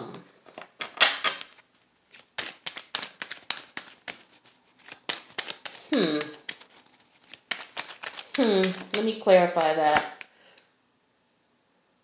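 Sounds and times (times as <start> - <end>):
cards being shuffled: 0.2 - 10.3.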